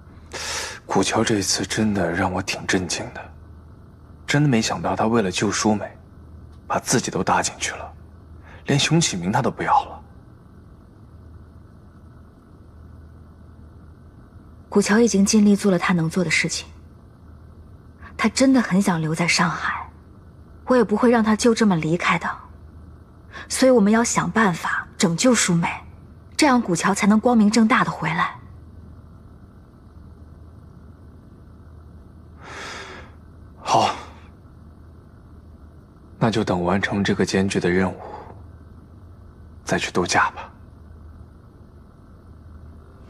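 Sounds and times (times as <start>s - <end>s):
soft even hiss: 0.0s - 43.0s
steady low hum: 0.0s - 43.0s.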